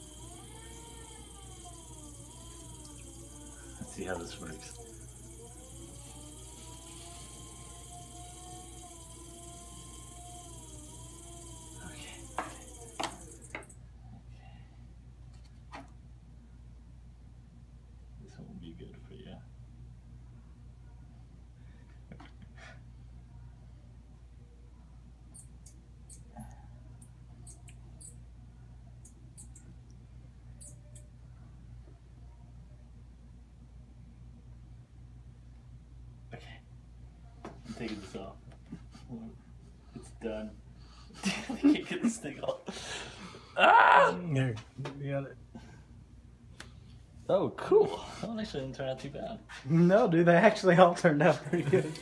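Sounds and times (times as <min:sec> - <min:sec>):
potter's wheel motor whine: 0:00.0 - 0:13.8.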